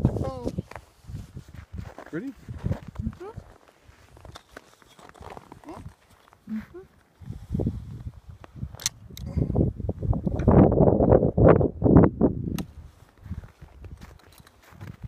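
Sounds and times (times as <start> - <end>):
crossbow sharp click: 8.8 - 9.3.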